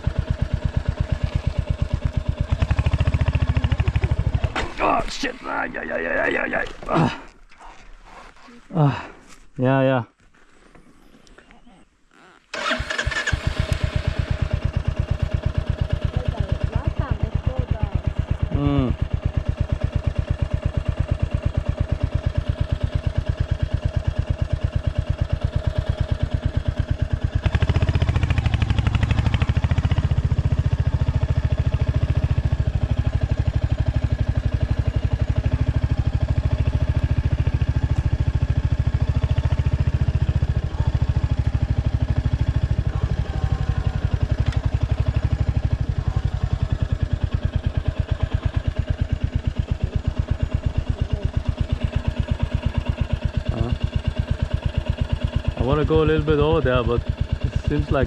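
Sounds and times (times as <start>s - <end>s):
motorcycle engine running: 0.0s - 7.2s, 12.2s - 58.0s.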